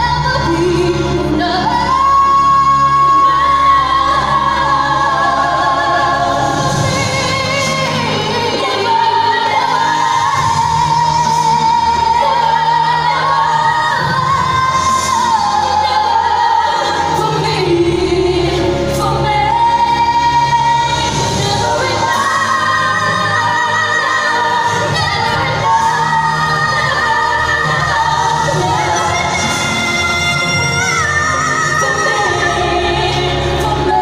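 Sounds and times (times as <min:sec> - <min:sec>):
backing music: 0:00.0 - 0:34.0
female vocal group singing: 0:00.0 - 0:34.0.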